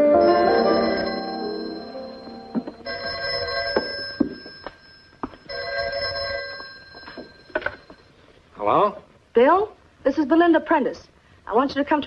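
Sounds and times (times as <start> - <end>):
piano chord: 0.0 - 3.1
telephone bell ringing: 0.0 - 8.3.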